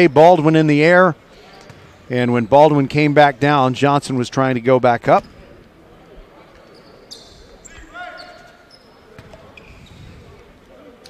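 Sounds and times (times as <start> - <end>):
ball bouncing on court floor: 1.6 - 1.9, 9.1 - 10.0.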